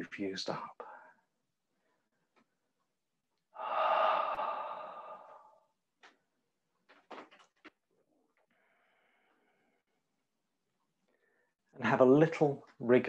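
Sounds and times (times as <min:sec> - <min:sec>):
person sighing: 0:03.6 - 0:05.7.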